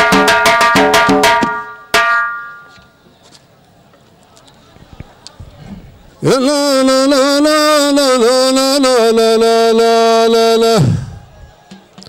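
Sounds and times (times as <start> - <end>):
fast ringing drumming: 0.0 - 2.7.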